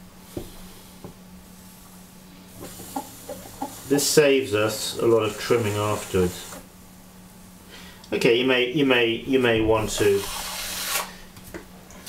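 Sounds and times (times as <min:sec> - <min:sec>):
potter's wheel humming: 0:00.0 - 0:12.0.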